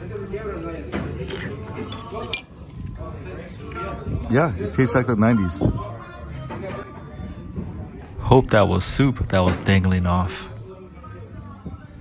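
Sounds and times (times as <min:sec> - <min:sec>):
metal spoon clinking ceramic bowl: 0:01.2 - 0:02.6.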